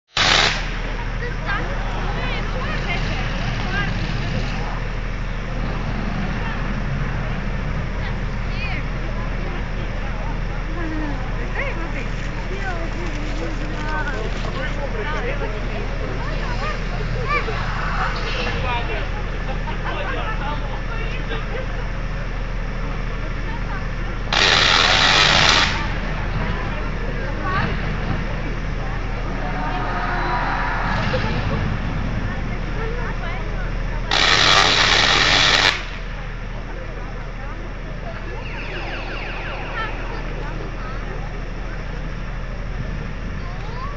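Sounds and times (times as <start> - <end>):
outdoor crowd voices: 0.0 - 43.9
tesla coil crackling buzz: 0.1 - 4.3, 24.2 - 36.6, 37.7 - 42.5
steady low hum: 0.1 - 43.9
brief loud burst: 0.2 - 1.0, 29.2 - 32.8
low hum: 25.8 - 34.1, 35.8 - 43.5.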